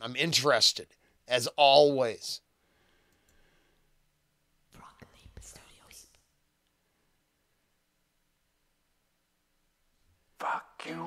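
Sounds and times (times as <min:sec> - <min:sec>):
person whispering: 0:04.7 - 0:06.3, 0:10.4 - 0:11.0.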